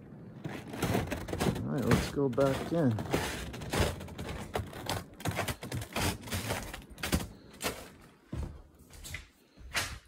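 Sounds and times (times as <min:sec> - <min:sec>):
footsteps crunching on snow: 0:00.4 - 0:09.6.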